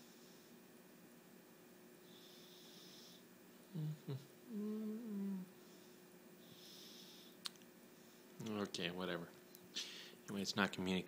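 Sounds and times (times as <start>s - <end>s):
faint high whine: 0.0s - 11.0s
man humming: 3.7s - 5.5s.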